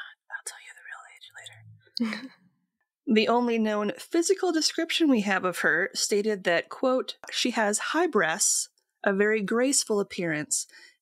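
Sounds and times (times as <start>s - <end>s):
person whispering: 0.0s - 2.3s.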